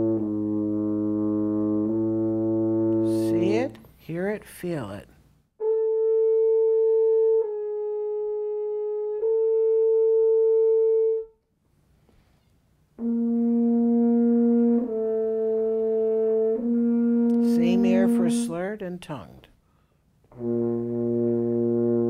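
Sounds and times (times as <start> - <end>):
french horn held notes: 0.0 - 4.8, 13.0 - 18.8, 20.3 - 22.0.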